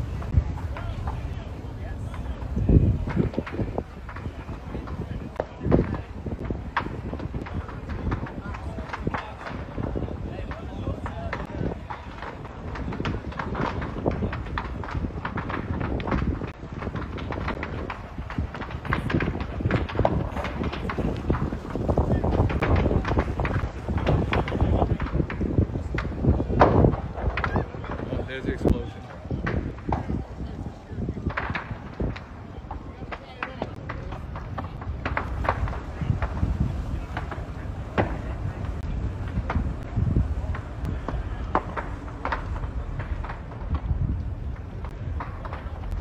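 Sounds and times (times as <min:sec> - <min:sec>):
knocks and crackles: 0:00.0 - 0:46.0
outdoor rumble: 0:00.0 - 0:46.0.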